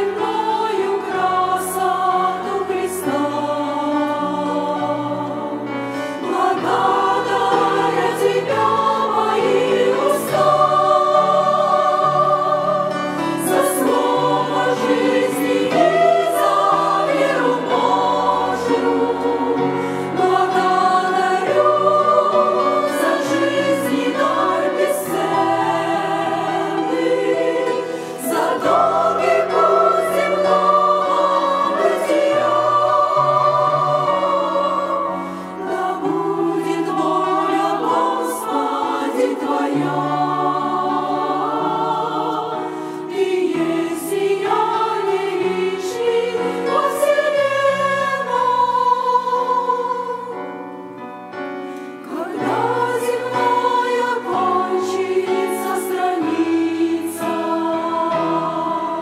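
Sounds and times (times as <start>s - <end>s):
women's choir singing a hymn: 0.0s - 59.0s.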